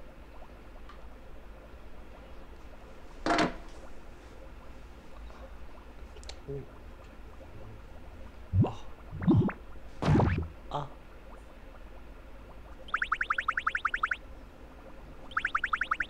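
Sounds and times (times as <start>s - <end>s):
cartoon rising boings: 8.6s - 10.5s, 12.8s - 14.2s, 15.3s - 16.0s
rapid short rising chirps: 12.8s - 14.2s, 15.3s - 16.0s.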